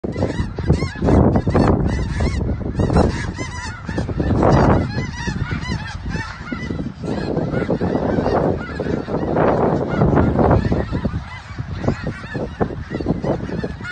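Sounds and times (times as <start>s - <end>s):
geese honking: 0.0s - 13.9s.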